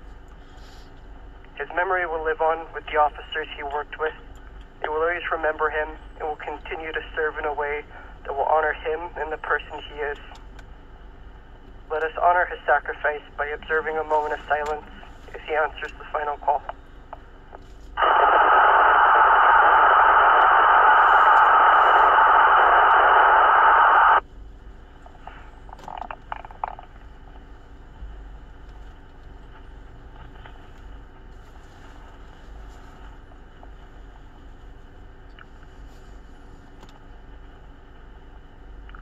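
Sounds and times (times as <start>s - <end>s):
faint steady hiss: 0.2s - 26.1s
radio speaker static: 1.5s - 10.4s, 11.9s - 24.2s, 25.0s - 27.4s.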